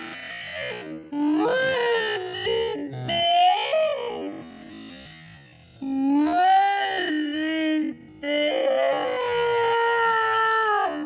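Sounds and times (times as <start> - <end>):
voice howling: 5.8 - 11.0.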